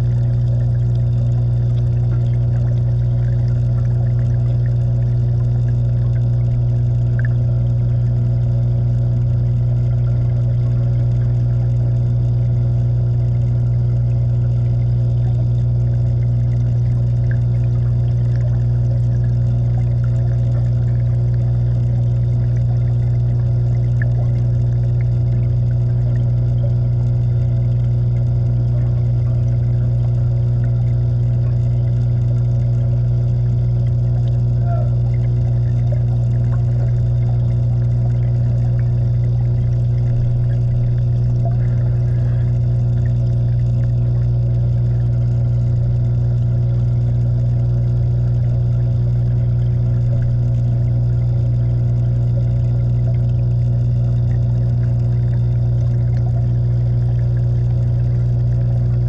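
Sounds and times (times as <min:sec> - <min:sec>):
aquarium pump hum: 0:00.0 - 0:59.0.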